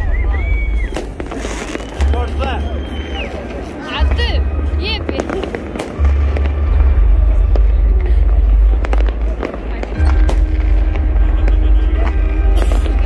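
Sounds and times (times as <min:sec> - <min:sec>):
fireworks bangs and crackles: 0:00.0 - 0:13.0
heavy low rumble: 0:00.0 - 0:13.0.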